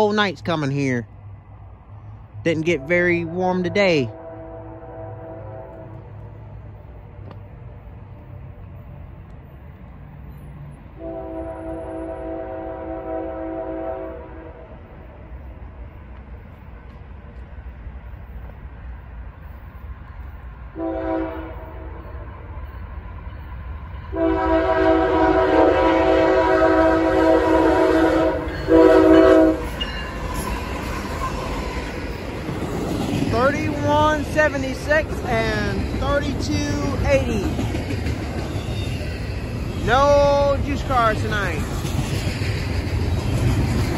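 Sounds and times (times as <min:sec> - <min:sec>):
train rumbling: 0:00.0 - 0:43.9
locomotive air horn blasts: 0:02.7 - 0:06.2, 0:11.0 - 0:14.7, 0:20.8 - 0:22.0, 0:24.1 - 0:29.8.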